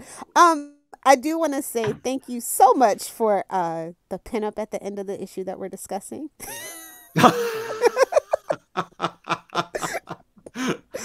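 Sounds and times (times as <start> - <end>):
people laughing: 6.4 - 10.8.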